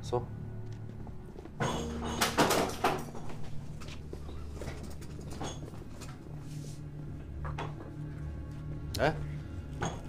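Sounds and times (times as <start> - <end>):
footsteps of people walking: 0.5 - 8.9
wooden door clattering: 1.6 - 3.6.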